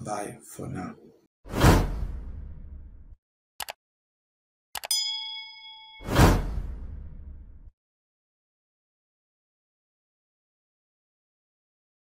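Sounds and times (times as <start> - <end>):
whoosh: 6.0 - 7.7.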